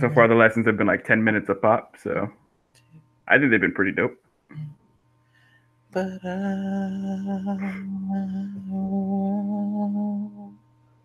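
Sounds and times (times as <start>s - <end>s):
man humming a low note: 0.0s - 2.3s, 3.3s - 4.1s, 7.4s - 10.5s.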